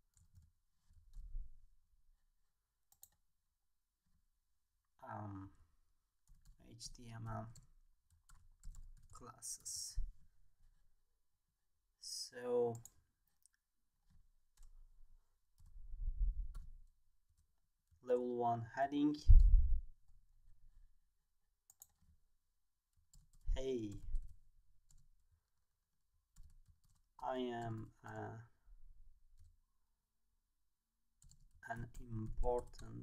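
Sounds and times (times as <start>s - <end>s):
typing on keyboard: 7.5s - 9.2s, 26.4s - 28.2s, 31.2s - 33.0s.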